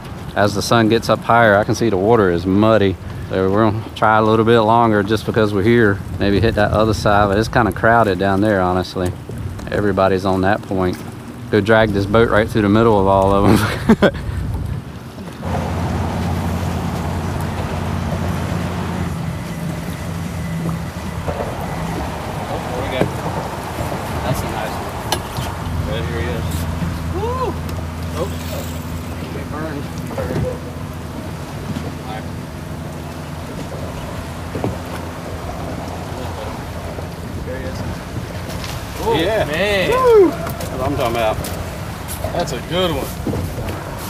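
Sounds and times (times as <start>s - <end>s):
boat motor humming: 0.0s - 44.0s.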